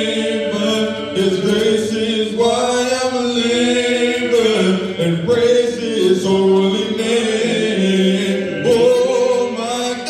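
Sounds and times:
voices singing a hymn: 0.0s - 10.0s.

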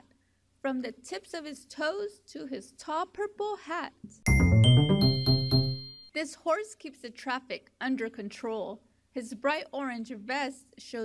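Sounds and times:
low chord: 4.3s - 6.0s
bell-like chime notes: 4.3s - 6.1s.

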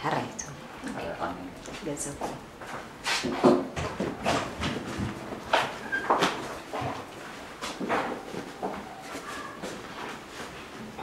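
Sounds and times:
footsteps on hard floor: 1.7s - 10.7s.

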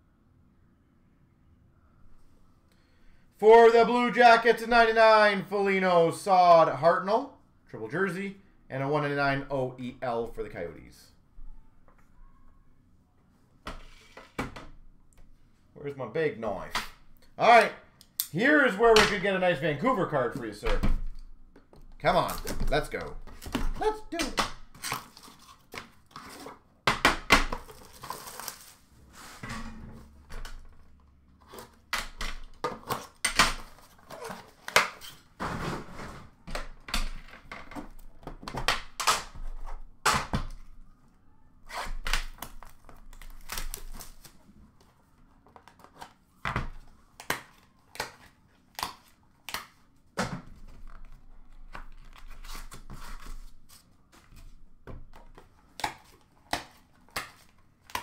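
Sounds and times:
packaging tearing and crinkling: 27.5s - 28.8s, 42.0s - 44.4s.

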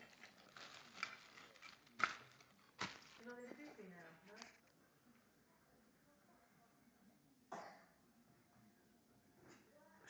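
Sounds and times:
rustling and handling noises: 0.0s - 4.8s.

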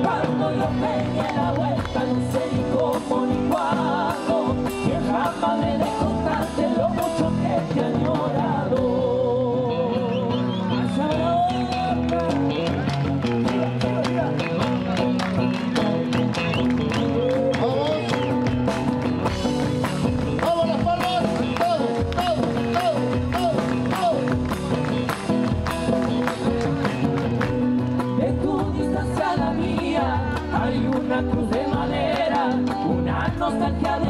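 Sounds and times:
guitar melody with bent notes: 0.0s - 34.0s
drums keeping steady beat: 17.4s - 34.0s.

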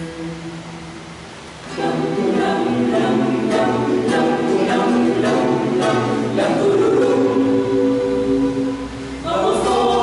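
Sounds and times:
strummed cuatro: 0.0s - 10.0s
choir singing: 1.7s - 10.0s.

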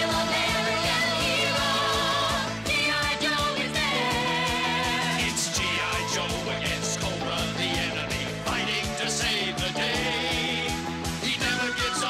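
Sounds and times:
steady drum beat: 0.0s - 12.0s
upbeat rock song: 0.0s - 12.0s.

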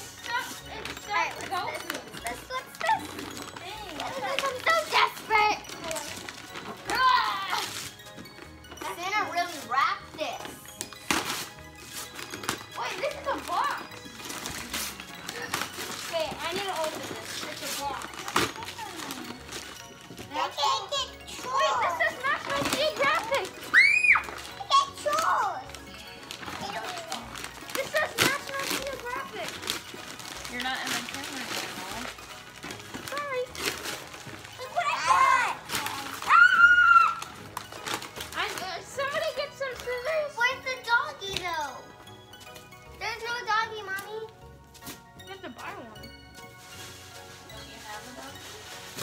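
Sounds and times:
excited children chattering: 34.6s - 37.4s.

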